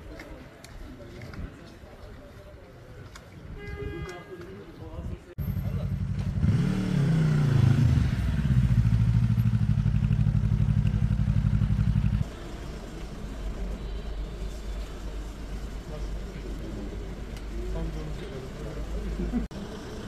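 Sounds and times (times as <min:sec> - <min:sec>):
street rumble: 0:00.0 - 0:20.0
vehicle engine revving and idling: 0:05.6 - 0:12.3.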